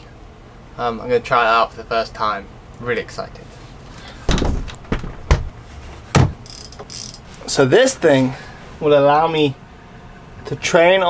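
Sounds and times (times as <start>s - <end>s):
bike trainer clunking on wooden floor: 4.3s - 6.7s
light knocking and rustling: 4.3s - 7.3s.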